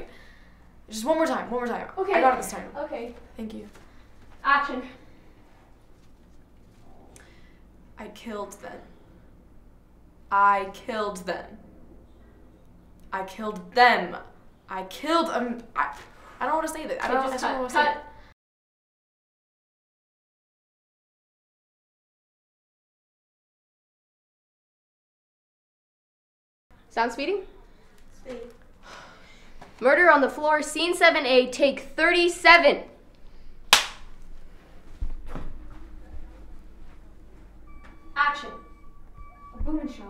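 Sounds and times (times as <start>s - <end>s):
woman's voice: 0.9s - 3.8s, 13.1s - 18.2s
faint rustles and movement: 3.0s - 7.1s, 34.2s - 38.1s
low steady hum: 26.8s - 40.0s.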